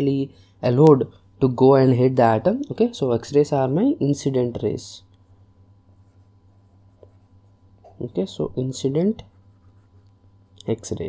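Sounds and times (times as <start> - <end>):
low steady hum: 0.0 - 11.0
stylus strokes on a screen: 5.9 - 8.0, 9.0 - 10.2.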